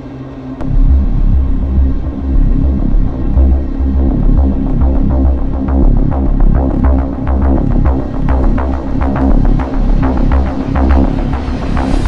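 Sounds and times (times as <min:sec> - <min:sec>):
electronic drum beat: 0:00.6 - 0:12.0
throbbing synth bassline: 0:00.6 - 0:12.0.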